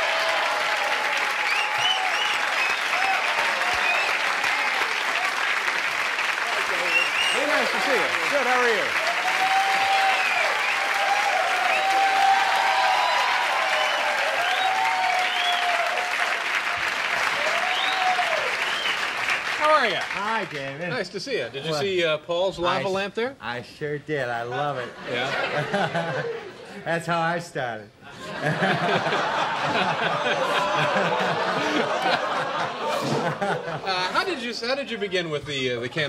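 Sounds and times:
crowd calling out and whooping: 0.0s - 5.5s, 8.6s - 16.3s, 17.2s - 19.0s
audience applauding: 0.0s - 20.8s, 28.5s - 34.3s.

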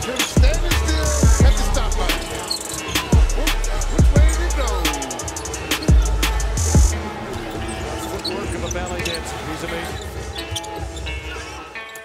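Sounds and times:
arena and broadcast sound: 0.0s - 11.8s.

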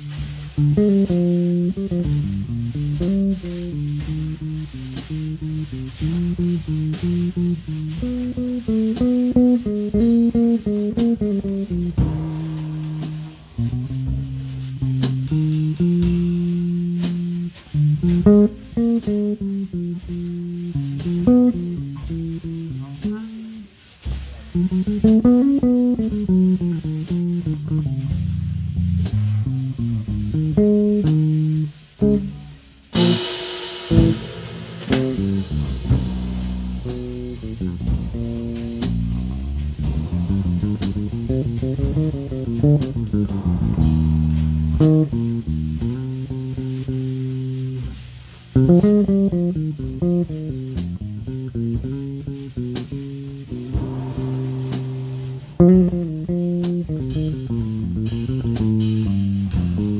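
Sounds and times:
drum kit and cymbals: 0.0s - 59.9s
electric bass guitar melody: 0.0s - 59.9s.

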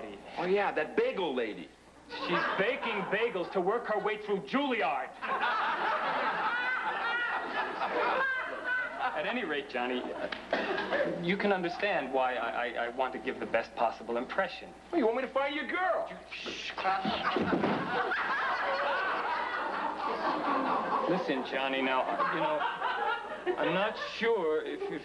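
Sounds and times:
studio audience laughing: 2.1s - 3.6s, 5.2s - 11.2s, 16.8s - 24.2s.

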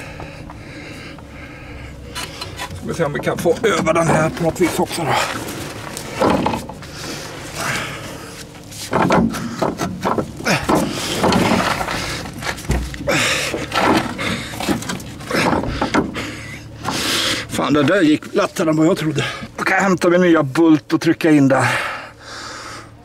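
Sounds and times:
man breathing heavily and grunting: 0.0s - 2.7s, 6.1s - 8.5s, 9.2s - 17.6s, 19.0s - 19.6s, 21.5s - 23.0s.

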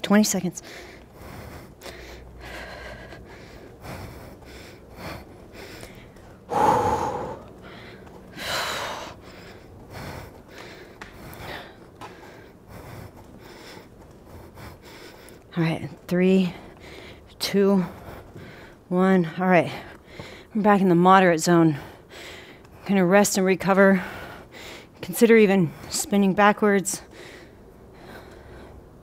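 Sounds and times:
woman breathing hard: 0.6s - 18.9s, 19.6s - 20.6s, 21.7s - 22.8s, 23.8s - 25.0s, 27.0s - 29.0s.

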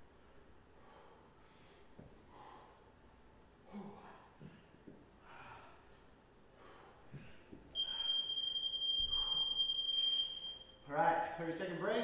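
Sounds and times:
man breathing hard: 0.7s - 3.0s, 3.6s - 10.2s
long high timer beep: 7.8s - 10.8s.

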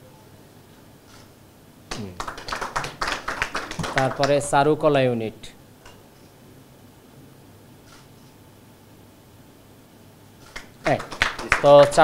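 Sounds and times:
people clapping: 1.9s - 4.5s, 10.5s - 12.0s.

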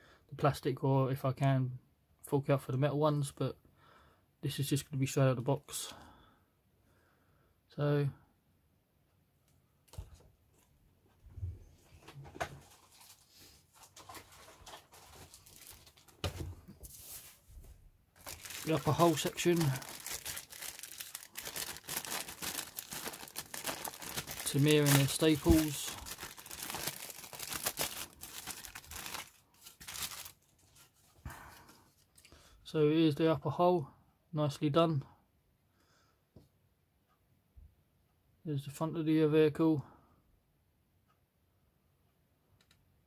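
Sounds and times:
plastic bag rustling: 12.6s - 17.5s, 18.2s - 31.1s.

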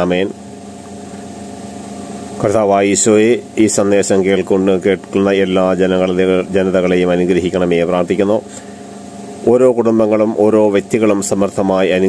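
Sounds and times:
man speaking: 0.0s - 0.4s, 2.4s - 8.5s, 9.4s - 12.0s
steady background hum: 0.0s - 12.0s.

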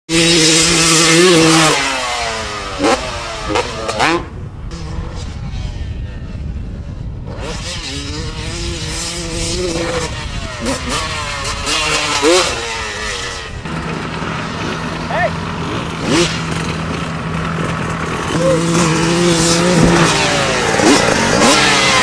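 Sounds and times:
dirt bike engines revving: 0.1s - 22.0s.

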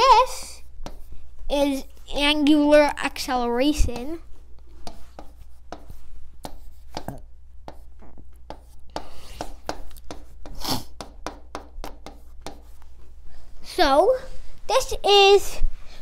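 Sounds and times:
marker tapping and scratching: 0.0s - 1.4s, 3.3s - 13.1s.

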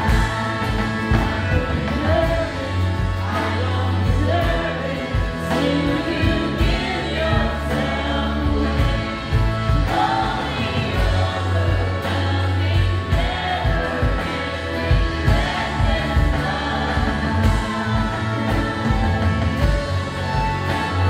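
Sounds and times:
acoustic guitar: 0.0s - 21.0s
drums: 0.0s - 21.0s
low bass notes: 0.0s - 21.0s
women singing together: 0.0s - 21.0s.

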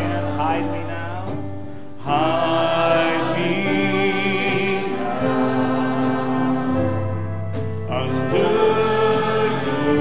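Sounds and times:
choir singing a hymn: 0.0s - 1.4s, 2.0s - 10.0s.

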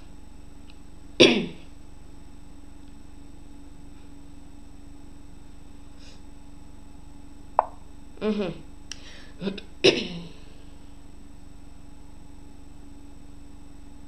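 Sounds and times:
low electrical hum: 0.0s - 14.0s
boy coughing: 1.2s - 1.6s, 9.4s - 10.4s.

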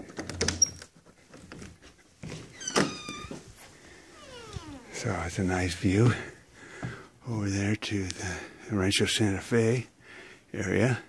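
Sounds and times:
cat meowing: 4.1s - 5.0s.

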